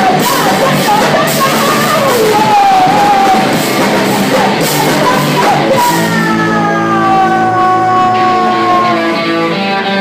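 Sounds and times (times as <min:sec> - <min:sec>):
band playing low notes: 0:00.0 - 0:10.0
electric guitar sliding note: 0:01.3 - 0:10.0.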